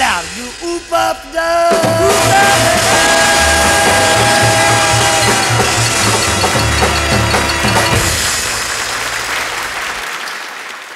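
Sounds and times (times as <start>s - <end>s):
singers holding a note: 1.2s - 6.9s
jazz band playing: 1.7s - 9.8s
audience applause: 2.0s - 10.9s.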